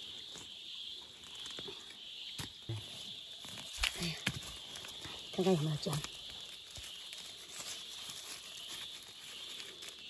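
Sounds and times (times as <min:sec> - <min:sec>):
dry soil rustling and crumbling: 0:00.0 - 0:10.0.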